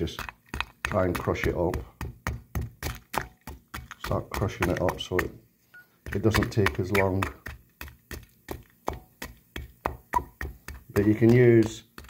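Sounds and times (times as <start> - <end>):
wooden handle knocking mortar: 0.0 - 5.4, 6.0 - 12.0.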